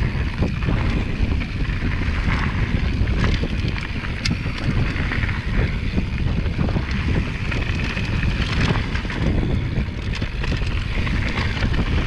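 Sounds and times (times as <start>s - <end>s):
bike clicks and rattles: 0.0s - 12.0s
wind buffeting microphone: 0.0s - 12.0s.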